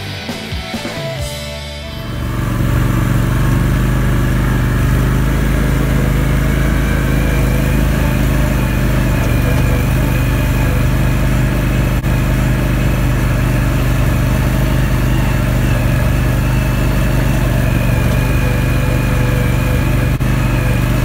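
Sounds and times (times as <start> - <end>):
quad bike engine running: 0.0 - 21.0.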